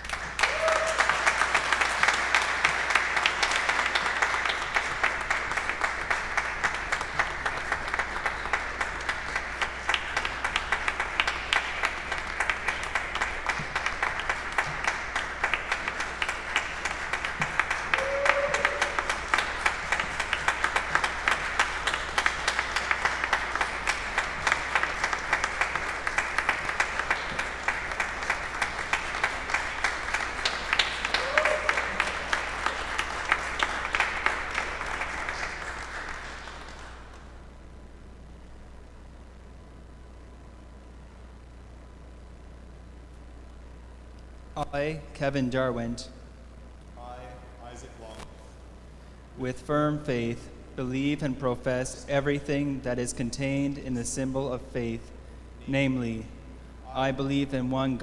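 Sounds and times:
crowd applauding: 0.0s - 37.5s.

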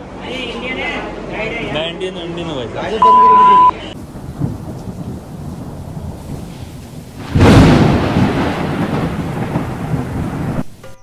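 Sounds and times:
loud thunderclap: 4.0s - 10.8s
thunder rumble: 4.0s - 10.8s.

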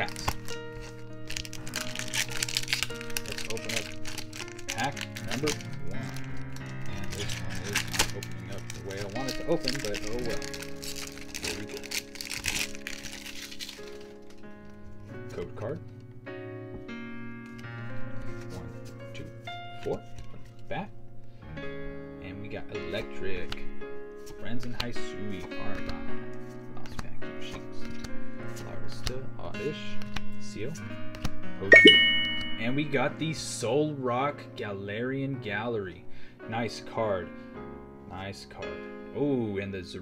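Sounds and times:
foil wrapper crinkling: 0.0s - 14.9s
cards being shuffled: 0.0s - 15.1s, 24.2s - 29.2s, 30.0s - 31.4s
background music: 0.0s - 40.0s
bright chime: 31.7s - 33.0s.

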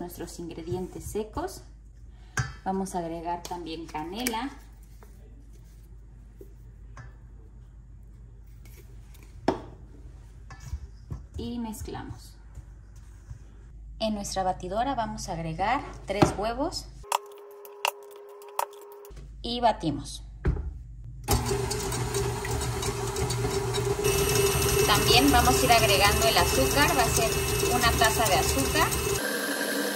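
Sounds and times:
stand mixer whisking eggs: 21.3s - 29.9s.

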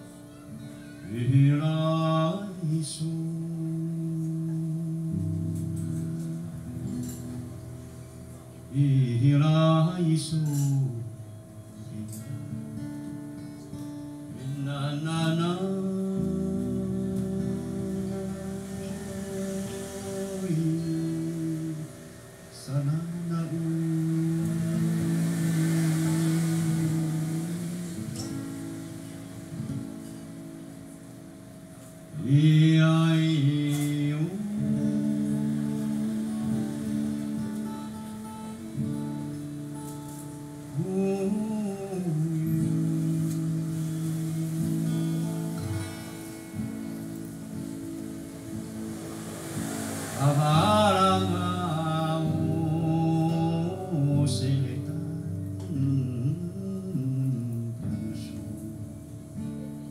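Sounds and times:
man singing long held notes: 0.0s - 7.0s, 8.7s - 11.2s, 14.3s - 29.7s, 32.1s - 39.6s, 40.6s - 46.6s, 49.2s - 58.8s
acoustic guitars ringing: 0.0s - 59.9s
long held sung note: 14.4s - 29.7s.

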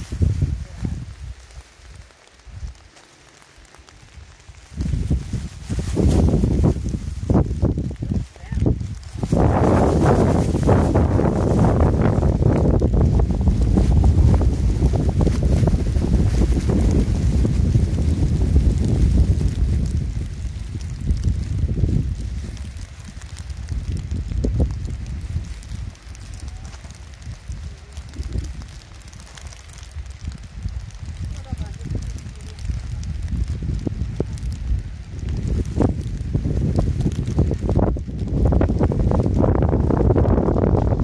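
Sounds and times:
wind buffeting microphone: 0.0s - 2.9s, 3.6s - 41.0s.

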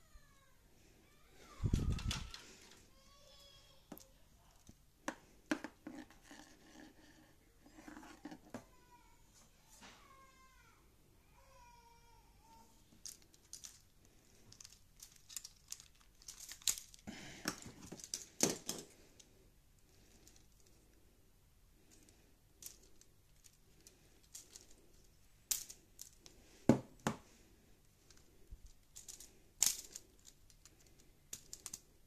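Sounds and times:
plastic parts clicking and rattling: 1.6s - 2.9s, 12.9s - 19.3s, 20.1s - 20.9s, 21.8s - 27.2s, 27.9s - 32.0s.

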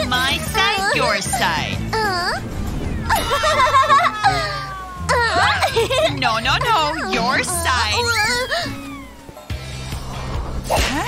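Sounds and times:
background music with low bass: 0.0s - 11.0s
girl whining: 1.9s - 2.4s, 3.1s - 5.8s, 6.8s - 9.3s.

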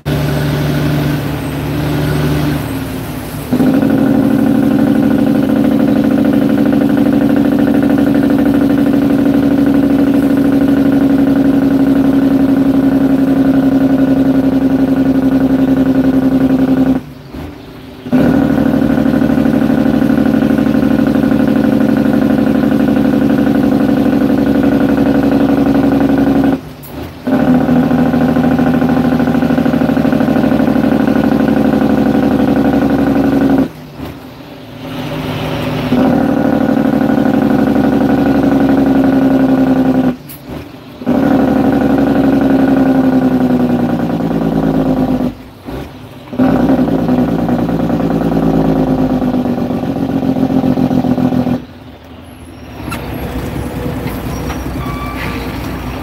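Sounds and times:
diesel truck engine drone: 0.0s - 56.0s.

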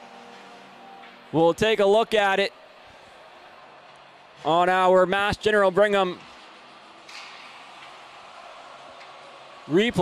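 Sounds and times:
faint arena and crowd noise: 0.0s - 10.0s.

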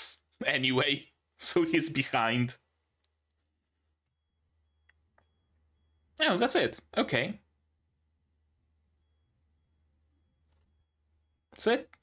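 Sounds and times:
faint low hum: 0.1s - 12.0s
faint high pulsing tone: 3.8s - 11.5s.

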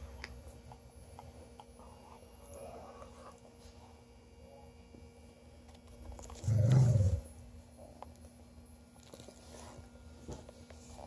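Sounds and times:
dog growling: 6.3s - 7.3s.

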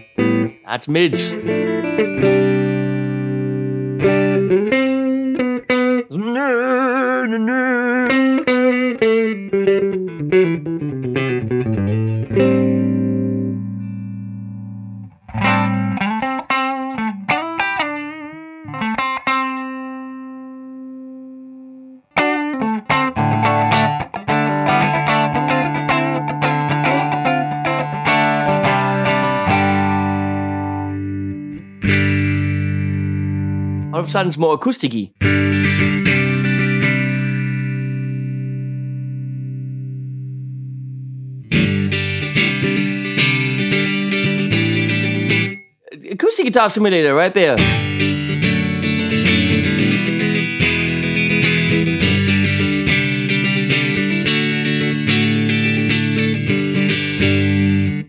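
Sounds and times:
electric guitar playing: 0.0s - 33.9s, 35.2s - 45.6s, 47.6s - 58.0s.

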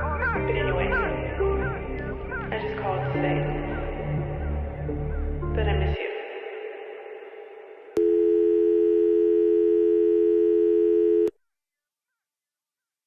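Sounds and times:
music: 0.0s - 6.2s
telephone dial tone: 8.0s - 11.3s.

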